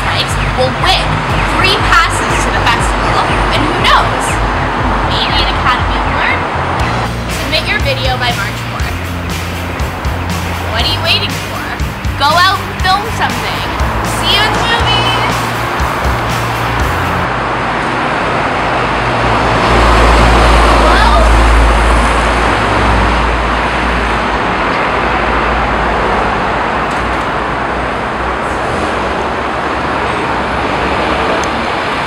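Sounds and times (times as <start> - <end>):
background music: 0.0 - 17.3
loud low rumbling: 0.0 - 26.8
city street traffic noise: 0.0 - 32.0
vehicle passing close by: 0.0 - 32.0.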